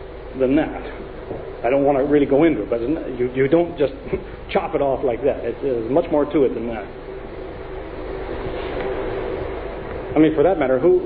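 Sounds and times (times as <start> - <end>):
faint steady hum: 0.0 - 11.0
hiss and rumble: 0.0 - 11.0.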